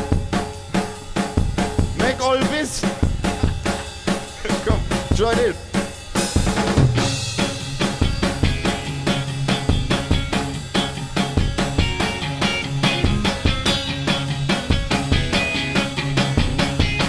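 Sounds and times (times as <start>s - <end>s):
bass guitar line: 0.0s - 17.0s
drum kit beat: 0.0s - 17.0s
cymbal crash: 2.6s - 15.1s
electric guitar: 7.0s - 17.0s.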